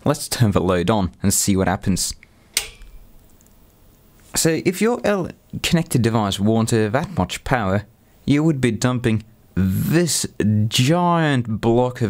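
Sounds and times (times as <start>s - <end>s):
sharp switch click with ring: 2.6s - 3.0s.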